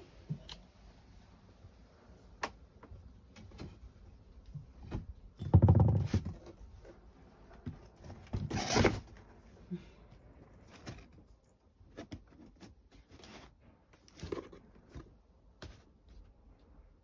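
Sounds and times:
cardboard rustling scrape: 7.9s - 9.3s, 11.9s - 15.0s.

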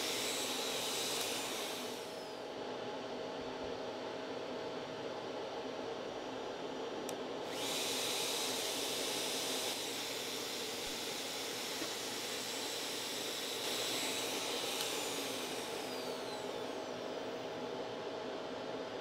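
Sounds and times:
router rushing and whining: 0.0s - 2.4s, 7.5s - 17.5s.

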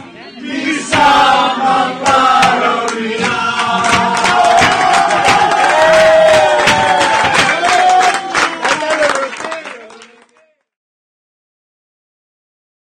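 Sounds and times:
group singing loudly: 0.3s - 7.3s
hand claps: 2.1s - 10.5s.

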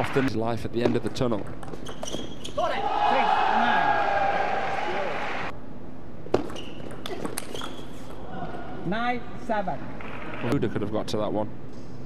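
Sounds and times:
player shouting: 2.6s - 5.5s
crowd noise: 2.8s - 5.5s.

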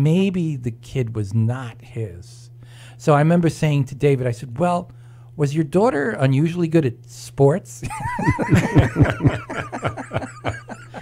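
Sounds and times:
men laughing: 7.8s - 11.0s.

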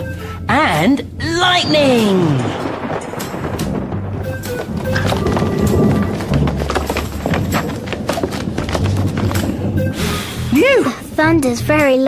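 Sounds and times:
light music: 0.0s - 12.0s
loud thunder with crackles: 1.6s - 10.0s.

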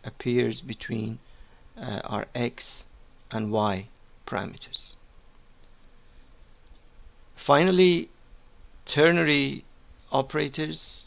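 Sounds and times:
room hiss: 0.0s - 11.0s
faint click: 5.3s - 5.8s, 6.6s - 6.9s.

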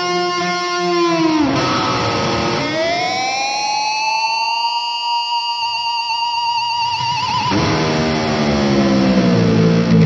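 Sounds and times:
sustained electric guitar note: 7.4s - 10.0s.

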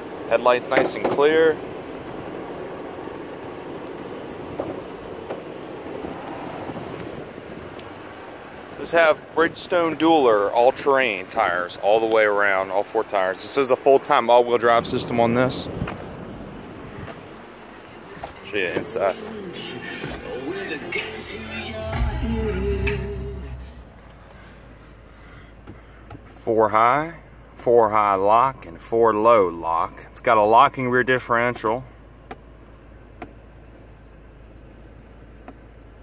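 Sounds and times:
outdoor background noise: 0.0s - 36.0s
low steady cabin hum: 14.2s - 26.6s.

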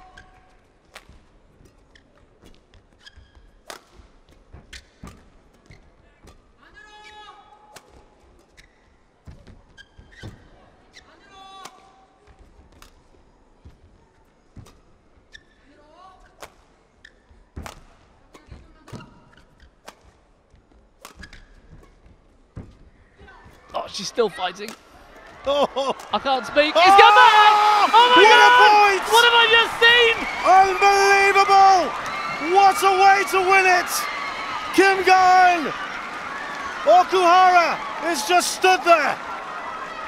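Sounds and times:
court shoes squeaking: 1.6s - 7.2s, 8.3s - 11.1s, 14.6s - 15.7s, 17.0s - 20.1s, 20.9s - 22.8s.

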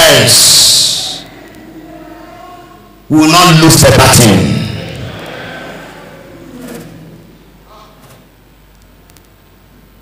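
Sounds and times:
echo of amplified man's voice: 0.0s - 1.4s, 3.1s - 6.5s
steady low hum: 0.0s - 10.0s.

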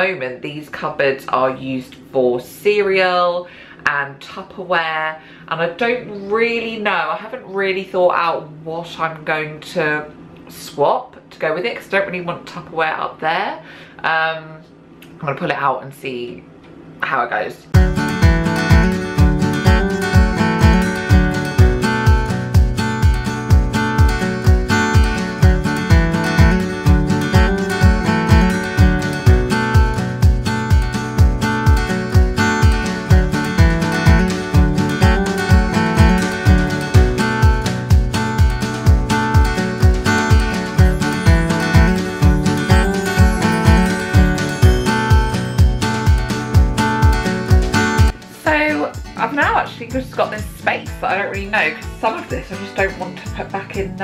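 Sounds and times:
strummed acoustic guitar: 17.8s - 54.0s.

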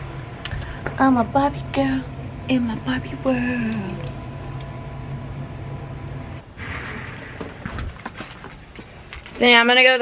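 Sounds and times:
low rumble: 0.0s - 8.6s.

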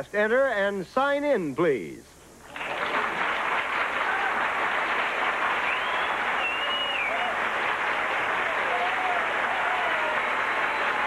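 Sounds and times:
audience applauding: 2.5s - 11.0s.

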